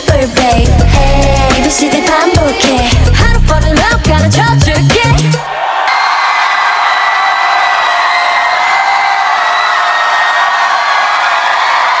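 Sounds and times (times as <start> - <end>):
audience cheering and screaming: 5.3 - 12.0.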